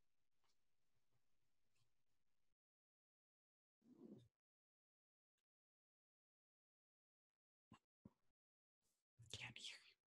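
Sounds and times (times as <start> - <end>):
faint whispering voice: 9.2 - 10.0.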